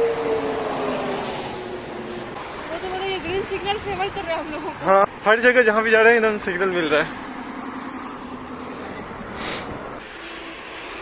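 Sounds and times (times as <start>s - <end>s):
passing vehicle engine and tyres: 0.0s - 11.0s.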